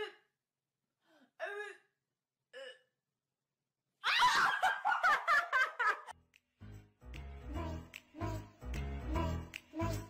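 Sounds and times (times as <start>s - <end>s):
woman laughing: 4.1s - 6.1s.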